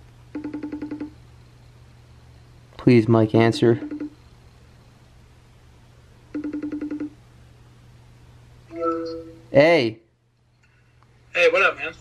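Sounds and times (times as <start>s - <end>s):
low steady hum: 0.0s - 12.0s
pulsing call ringtone trill: 0.3s - 1.2s, 3.5s - 4.2s, 6.3s - 7.2s.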